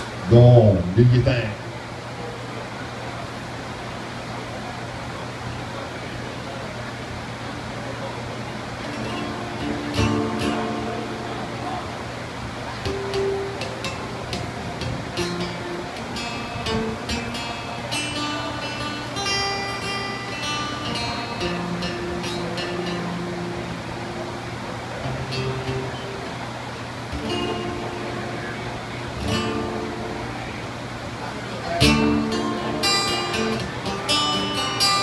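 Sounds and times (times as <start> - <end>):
background chatter: 0.0 - 35.0
acoustic guitar playing: 8.7 - 35.0.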